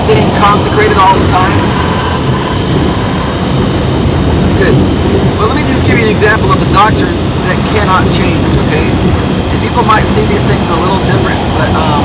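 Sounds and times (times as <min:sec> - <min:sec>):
road and engine rumble in vehicle: 0:00.0 - 0:12.0.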